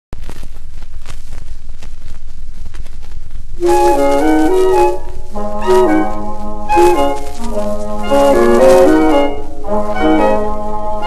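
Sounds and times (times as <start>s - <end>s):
record crackles and clicks: 0.1s - 11.0s
record surface hiss: 0.1s - 11.0s
low rumble: 0.2s - 4.0s
dance orchestra music: 3.6s - 11.0s.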